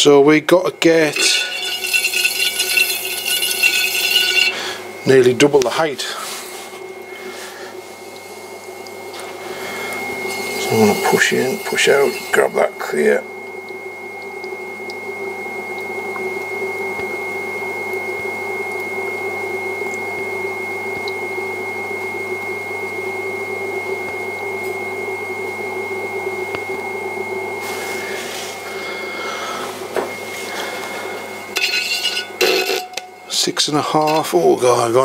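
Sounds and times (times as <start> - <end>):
potter's wheel motor whine: 0.0 - 35.0.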